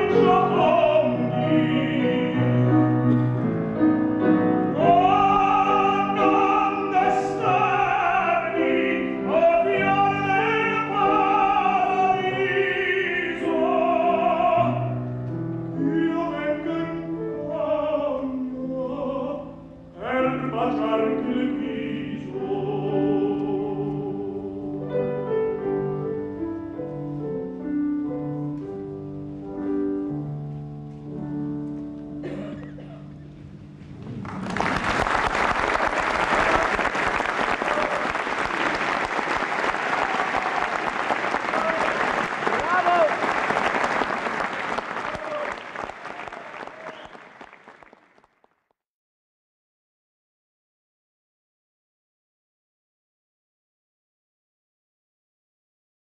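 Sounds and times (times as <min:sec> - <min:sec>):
operatic tenor singing: 0:00.0 - 0:03.2, 0:04.2 - 0:15.1, 0:15.8 - 0:24.9
audience applauding: 0:34.0 - 0:48.7.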